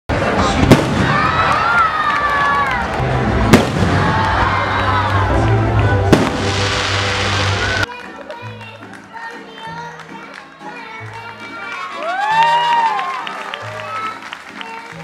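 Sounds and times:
steady background din: 0.1 - 9.0
fireworks exploding: 0.5 - 2.3, 3.3 - 7.9.

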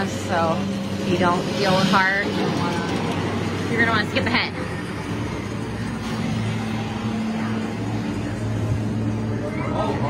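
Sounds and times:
low droning hum: 0.0 - 10.0
noisy rumble: 0.0 - 10.0.

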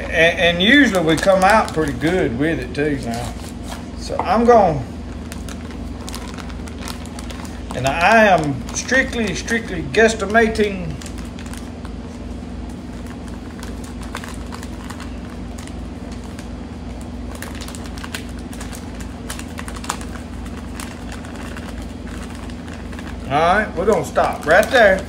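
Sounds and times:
low background hum: 0.0 - 25.0.

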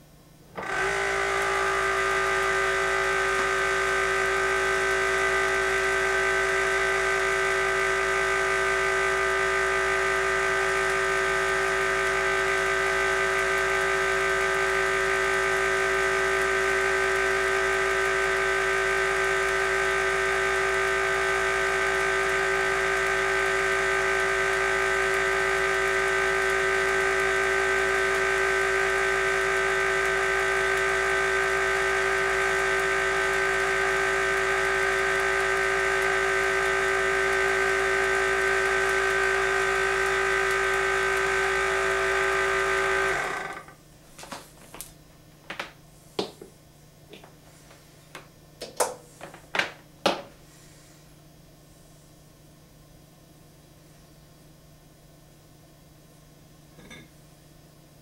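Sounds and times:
generator motor whirring: 0.0 - 45.0.

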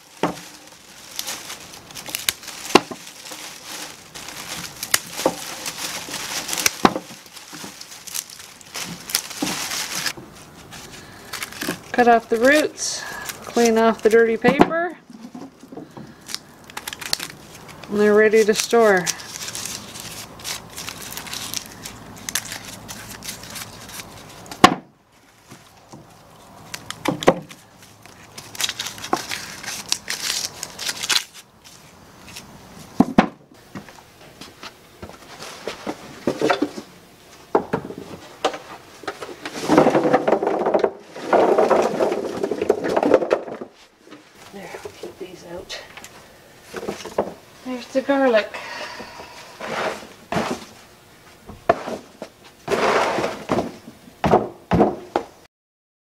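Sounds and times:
crackly rustling of dry skins: 0.0 - 33.0, 33.6 - 52.8.

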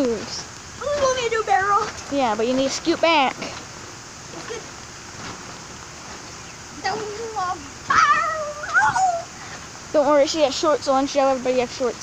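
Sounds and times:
child squealing: 7.9 - 9.4.

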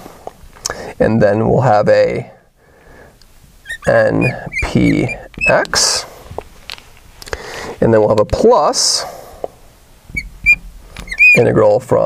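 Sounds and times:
marker squeaking on glass: 3.6 - 6.0, 10.1 - 11.6.

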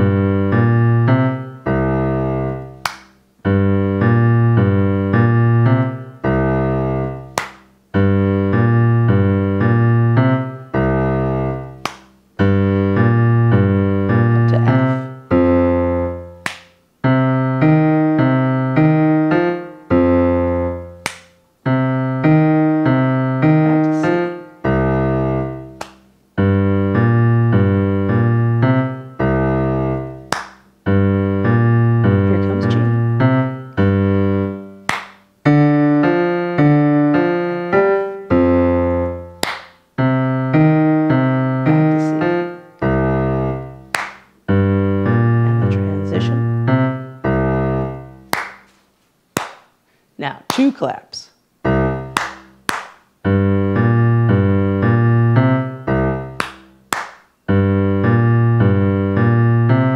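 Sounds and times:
blues boogie on digital piano: 0.0 - 48.6, 51.6 - 59.9
hand clap: 2.8 - 3.2, 7.3 - 7.7, 11.8 - 12.2, 16.4 - 16.8, 21.0 - 21.4, 25.7 - 26.1, 30.3 - 30.7, 34.8 - 35.3, 39.4 - 39.8, 43.9 - 44.3, 48.3 - 48.8, 49.4 - 49.8, 52.1 - 53.1, 56.4 - 57.4.

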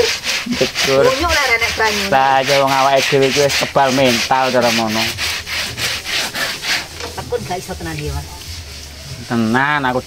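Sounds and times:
quick rubbing strokes: 0.0 - 10.0.

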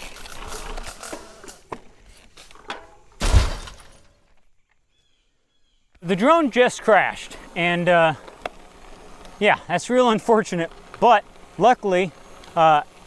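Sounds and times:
branches rustling: 0.0 - 13.0
drone crashing into branches: 3.2 - 4.1
heavy thud: 3.2 - 4.1.

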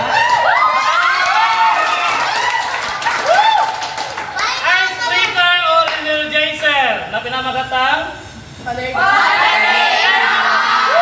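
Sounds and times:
students cheering and shouting: 0.0 - 4.6, 9.0 - 11.0.

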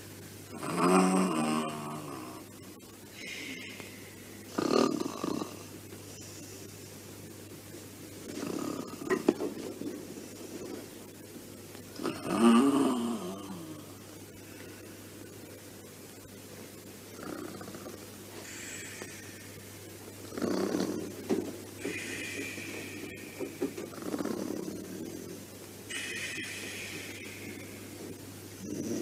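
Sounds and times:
person snoring: 0.5 - 2.4, 4.5 - 5.7, 8.3 - 9.1, 12.0 - 14.0, 20.3 - 21.2, 23.9 - 25.4, 28.6 - 29.0.

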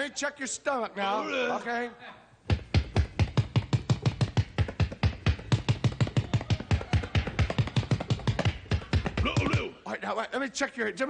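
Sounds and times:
rapid drum-like thumping: 2.5 - 9.7.

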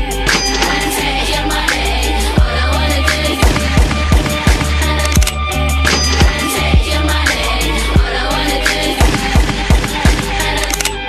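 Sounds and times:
hip-hop beat: 0.0 - 10.6.

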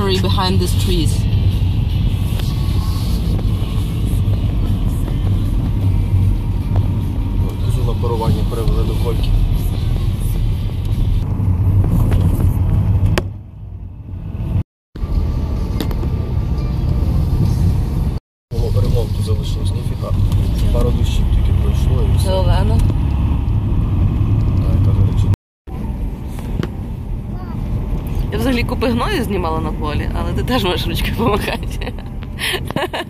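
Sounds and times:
car engine and tyres rumbling: 0.0 - 33.0.

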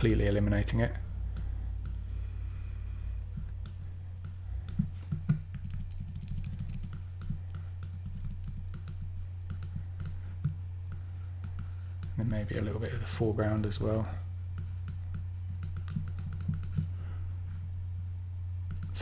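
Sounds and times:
low electrical hum: 0.0 - 19.0
mouse and keyboard clicks: 3.4 - 16.9, 18.7 - 19.0.

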